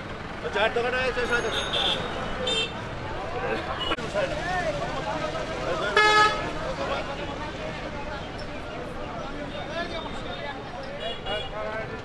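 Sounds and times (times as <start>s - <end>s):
vehicle horn blast: 6.0s - 6.5s.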